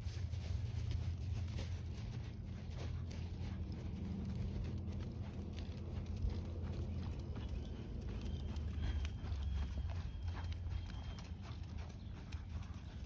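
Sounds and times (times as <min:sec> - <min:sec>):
horse hoofbeats on sand: 0:00.0 - 0:13.0.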